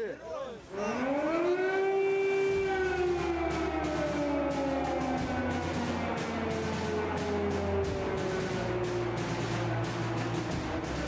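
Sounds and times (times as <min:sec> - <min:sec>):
air-raid siren wailing: 0:00.6 - 0:11.0.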